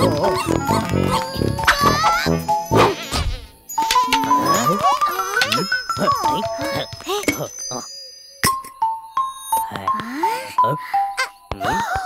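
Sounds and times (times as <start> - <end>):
cartoon music: 0.0 - 7.9.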